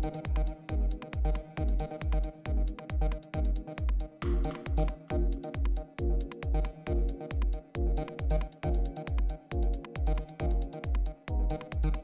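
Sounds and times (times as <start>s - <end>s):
hi-hat ticks: 0.0s - 12.0s
techno kick drum: 0.0s - 12.0s.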